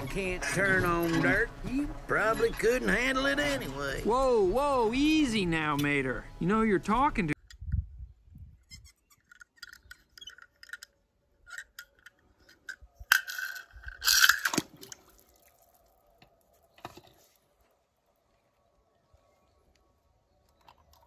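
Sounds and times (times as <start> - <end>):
toy car clicks: 9.2 - 14.6
toy car splashing into water: 13.2 - 15.7.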